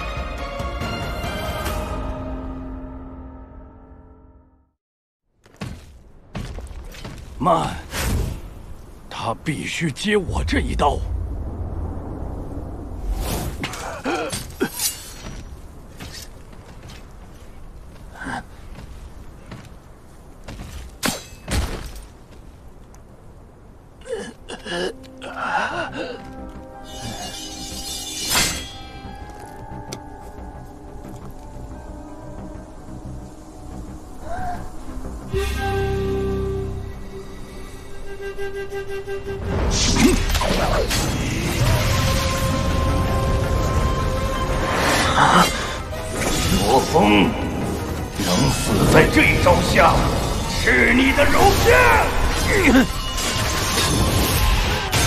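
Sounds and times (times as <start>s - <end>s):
background music: 0.0s - 4.7s, 24.0s - 55.0s
low battlefield rumble: 5.8s - 21.0s.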